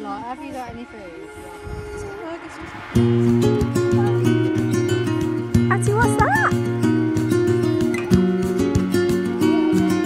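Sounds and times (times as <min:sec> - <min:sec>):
acoustic guitar music: 0:00.0 - 0:10.0.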